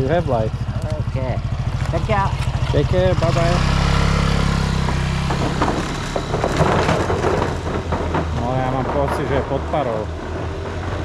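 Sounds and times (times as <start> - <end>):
scooter engine drone: 0.0 - 11.0
wooden boards knocking and rattling: 4.8 - 9.8.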